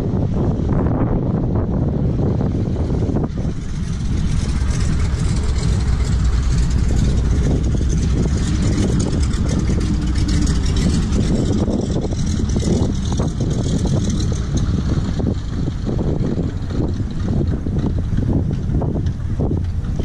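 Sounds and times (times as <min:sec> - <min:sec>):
engine drone: 0:00.0 - 0:20.0
wind buffeting microphone: 0:00.0 - 0:20.0.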